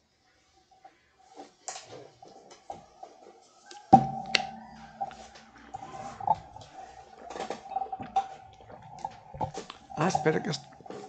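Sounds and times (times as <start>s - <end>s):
faint steady tone: 0.0s - 11.0s
person sipping and swallowing: 4.0s - 11.0s.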